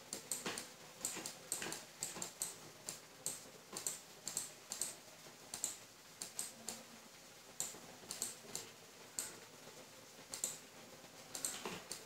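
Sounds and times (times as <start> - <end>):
mouse and keyboard clicks: 0.1 - 4.9, 5.5 - 6.8, 7.6 - 9.4, 10.3 - 10.6, 11.3 - 12.0.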